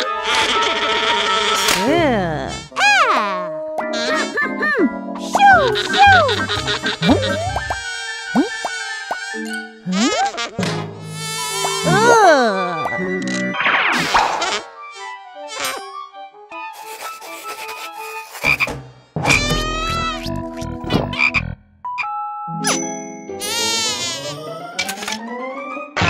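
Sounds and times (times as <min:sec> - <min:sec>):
cartoon crying whimper: 0:11.9 - 0:13.0.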